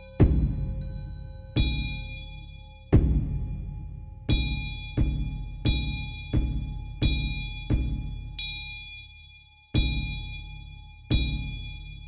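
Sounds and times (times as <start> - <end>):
ringing metal bell: 0.0 - 3.0
deep ritual drum strokes: 0.1 - 0.9, 2.9 - 8.3.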